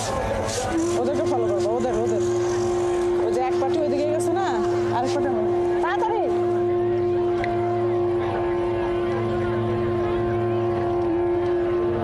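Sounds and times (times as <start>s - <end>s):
steady even hum: 0.0s - 12.0s.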